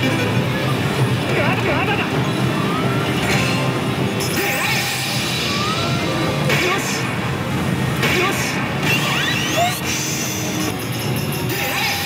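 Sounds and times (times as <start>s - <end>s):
din of gaming parlor: 0.0s - 12.0s
slot machine electronic music: 0.0s - 12.0s.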